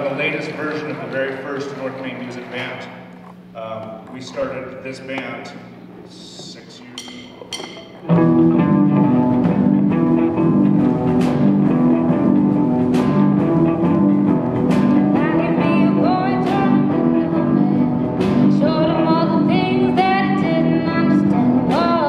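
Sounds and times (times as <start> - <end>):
live rock band playing: 7.9 - 22.0
woman singing: 15.0 - 22.0.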